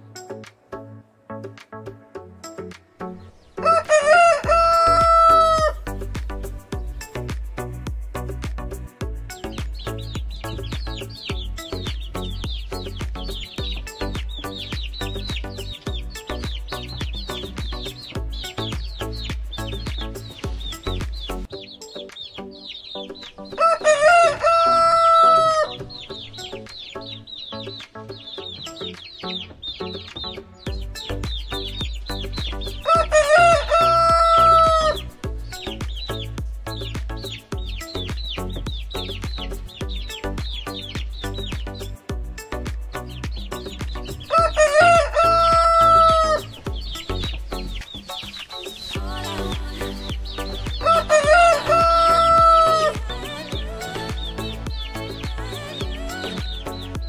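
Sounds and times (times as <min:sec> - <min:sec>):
high chirps: 0:00.0 - 0:57.0
light background music: 0:00.0 - 0:57.0
rooster crowing: 0:03.6 - 0:05.8, 0:23.6 - 0:25.8.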